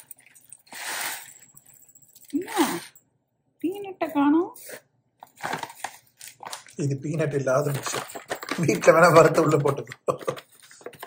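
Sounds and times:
snack pieces pouring from foil pouch: 5.3 - 6.8, 7.4 - 11.0.

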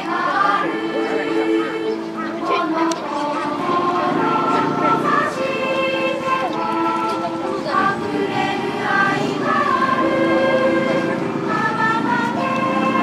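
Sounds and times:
children singing together: 0.0 - 13.0.

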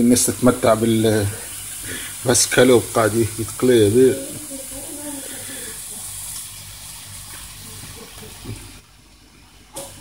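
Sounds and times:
meat sizzling on grill pan: 0.0 - 8.8.

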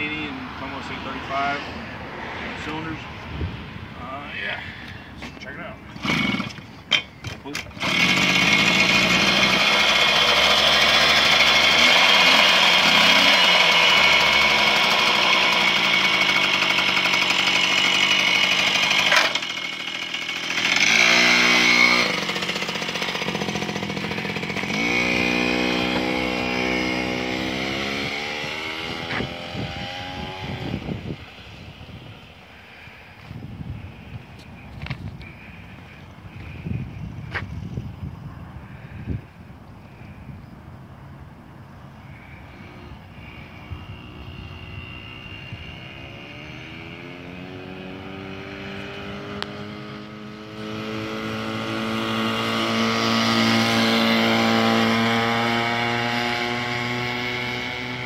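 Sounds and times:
moped engine revving: 5.9 - 33.1, 42.0 - 58.0
moped pulling away: 6.0 - 33.2, 42.0 - 58.0.

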